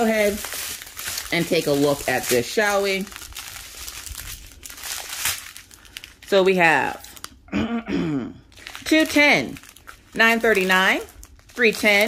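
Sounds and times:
plastic bags crinkling: 0.0 - 7.4, 8.5 - 12.0.

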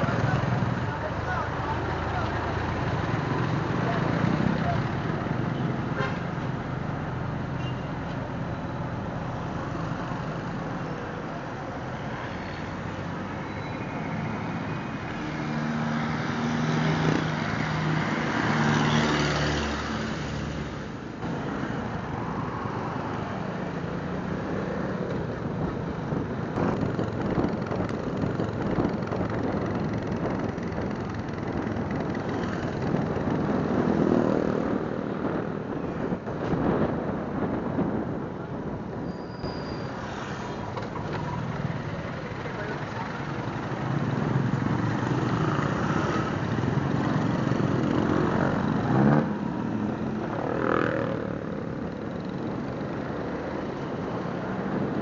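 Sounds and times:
road and wind noise: 0.0 - 55.0.

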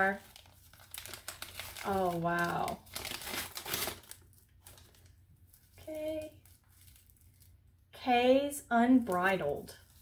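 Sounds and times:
paper sleeve crinkling: 0.0 - 7.6.

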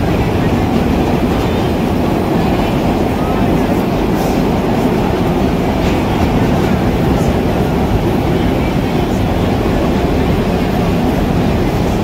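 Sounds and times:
subway car wheels on rail: 0.0 - 12.0.

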